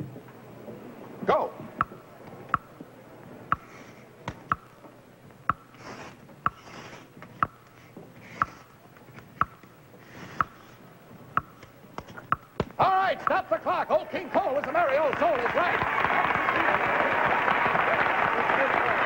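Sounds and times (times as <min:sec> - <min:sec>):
cards scraping on a board: 0:05.5 - 0:09.4, 0:10.0 - 0:10.8.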